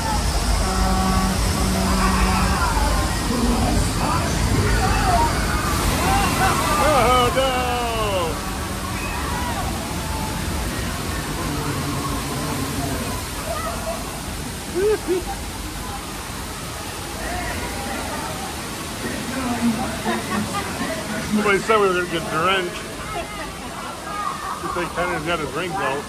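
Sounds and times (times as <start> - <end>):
faint voices: 0.0 - 26.0
water gushing and splashing: 0.0 - 26.0.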